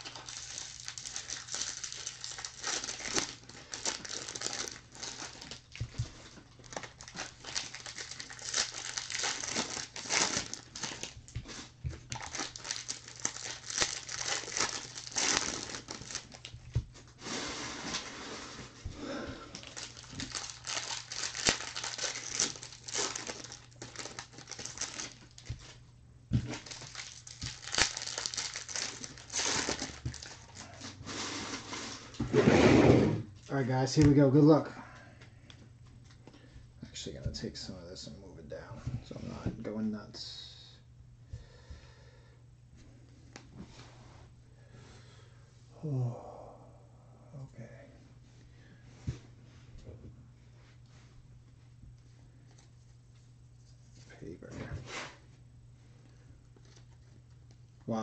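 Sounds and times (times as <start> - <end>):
plastic shrink wrap crinkling: 0.0 - 18.1, 19.5 - 32.2, 56.4 - 58.0
faint steady hum: 0.0 - 58.0.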